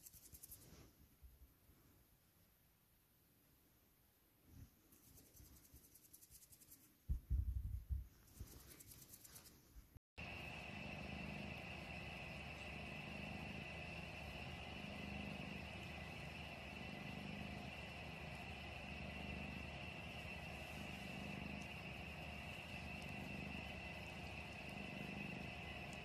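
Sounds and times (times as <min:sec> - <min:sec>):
cat purring: 0:10.2 - 0:26.0.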